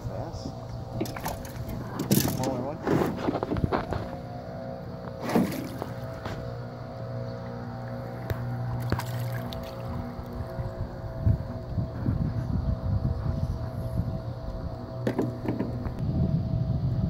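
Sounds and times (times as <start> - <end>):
boat motor humming: 0.0 - 17.0.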